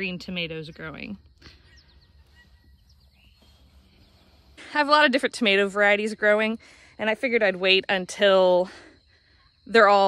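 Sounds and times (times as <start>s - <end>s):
faint bird chirps: 0.1s - 4.8s.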